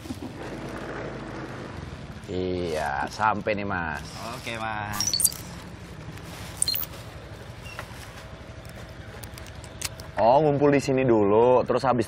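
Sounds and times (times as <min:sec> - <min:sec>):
scooter engine idling: 0:00.0 - 0:11.5.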